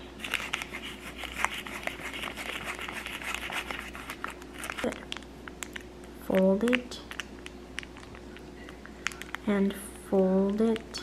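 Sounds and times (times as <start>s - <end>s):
plastic sachet crinkling: 0.2s - 9.8s.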